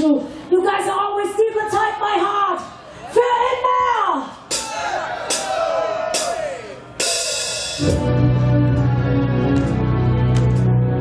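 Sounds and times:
voices shouting: 4.5s - 7.0s
live rock band playing: 7.0s - 11.0s.

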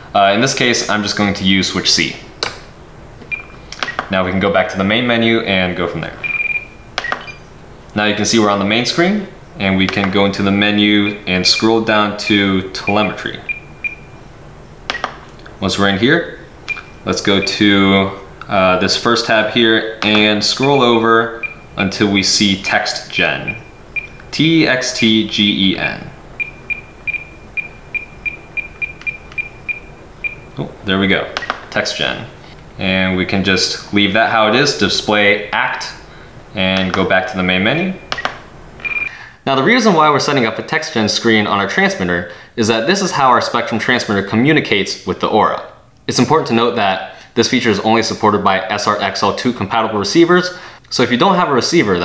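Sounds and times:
transmitter beeping: 2.3s - 4.2s, 6.0s - 8.0s, 9.2s - 39.1s
short high beep: 6.2s - 7.4s, 26.4s - 30.6s, 38.0s - 39.1s
button clicks: 14.9s - 15.4s, 16.6s - 16.9s, 26.4s - 30.5s, 31.3s - 31.7s, 38.0s - 39.1s.

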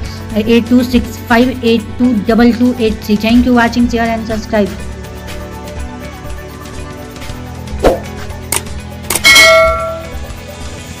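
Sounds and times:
background music: 0.0s - 11.0s
bright bell ding: 9.1s - 10.2s.

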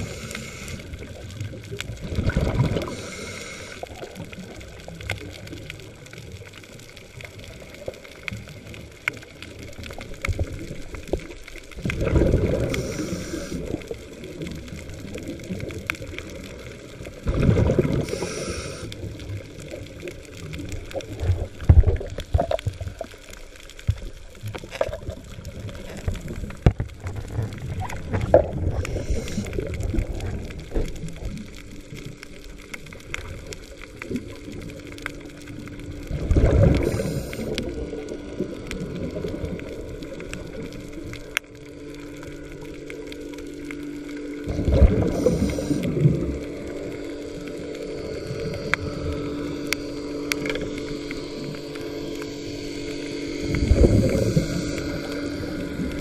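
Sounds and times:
rushing bubbling bursts: 0.0s - 6.4s, 9.5s - 23.2s, 24.0s - 32.1s, 33.2s - 41.1s, 44.5s - 47.0s, 52.7s - 56.0s
faint steady hum: 0.0s - 56.0s
underwater rumble: 0.0s - 56.0s.

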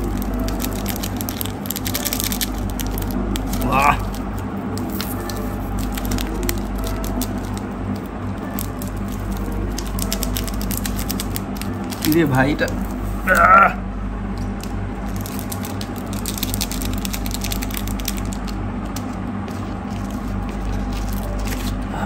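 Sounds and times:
plastic sachet crinkling and tearing: 0.0s - 13.5s, 14.4s - 21.9s
low hum: 0.0s - 22.0s.

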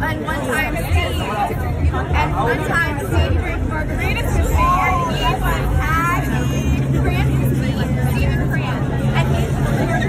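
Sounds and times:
group of people chatting: 0.0s - 10.0s
vehicle engine hum: 0.0s - 10.0s.

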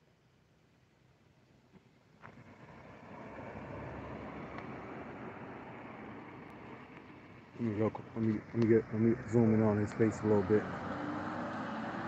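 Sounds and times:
car engine and tyres running: 1.1s - 12.0s.

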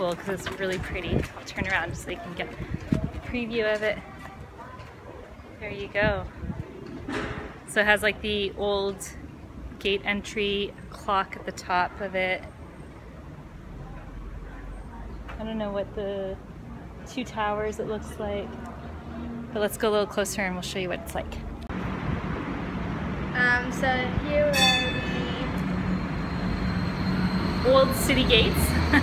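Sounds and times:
city street rumble: 0.0s - 29.0s.

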